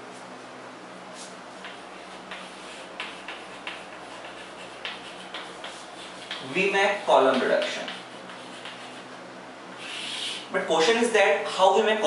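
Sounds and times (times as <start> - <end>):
chalk tapping and scratching: 1.2 - 9.2.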